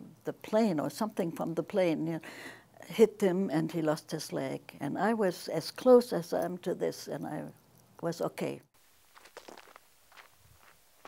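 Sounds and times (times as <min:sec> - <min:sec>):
footsteps on dirt trail: 0:09.0 - 0:11.0.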